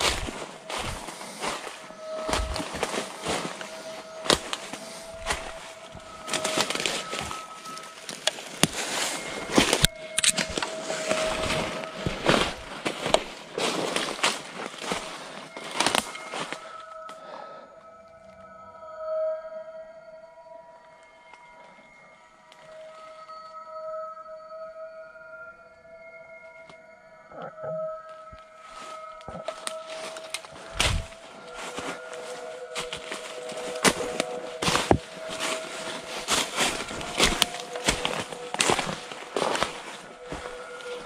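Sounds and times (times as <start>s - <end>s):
footsteps on dry leaves and twigs: 0.0s - 17.2s, 28.3s - 41.0s
droning background music: 0.0s - 41.0s.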